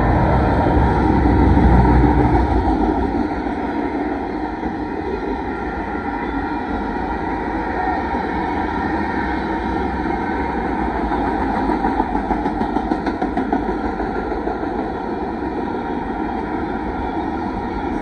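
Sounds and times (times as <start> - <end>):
freight train wheels rumbling: 0.0 - 18.0.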